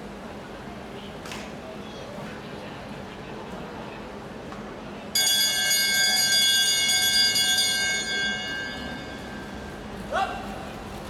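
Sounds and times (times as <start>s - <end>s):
lap bell ringing: 5.2s - 10.0s.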